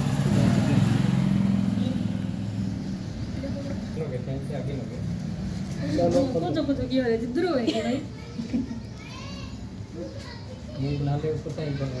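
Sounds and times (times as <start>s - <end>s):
adults talking: 0.1s - 12.0s
child's high voice: 8.1s - 11.0s.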